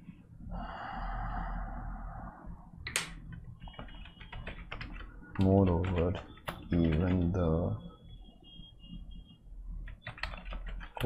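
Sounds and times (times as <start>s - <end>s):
keyboard typing: 2.9s - 7.8s, 9.8s - 11.0s.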